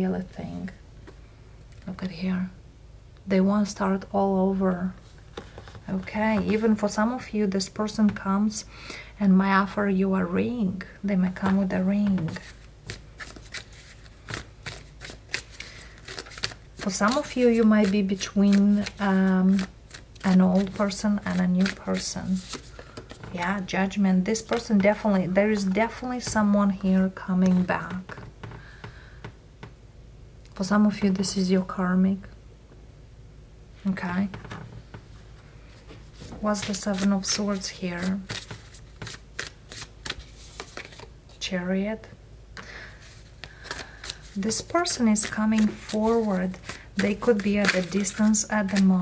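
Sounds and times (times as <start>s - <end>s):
cards being shuffled: 5.3s - 6.6s, 11.4s - 23.6s, 24.4s - 26.5s, 36.0s - 41.4s, 43.0s - 49.0s.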